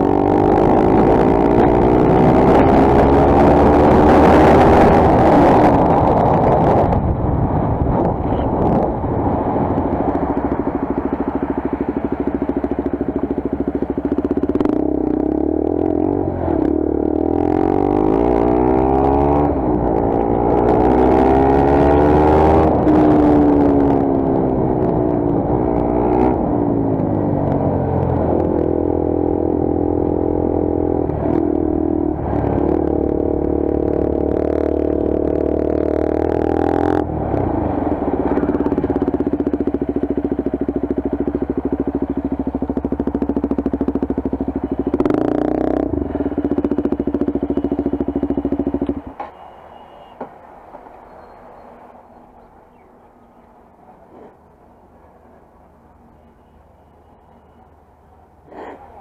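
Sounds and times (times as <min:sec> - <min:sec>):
motorcycle engine revving: 0:00.0 - 0:49.2.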